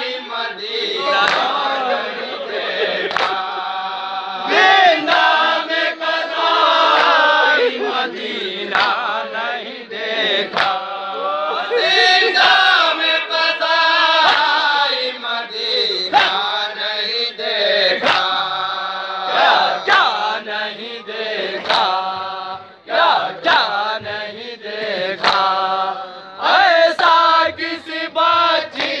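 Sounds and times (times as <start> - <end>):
men chanting in unison: 0.0 - 29.0.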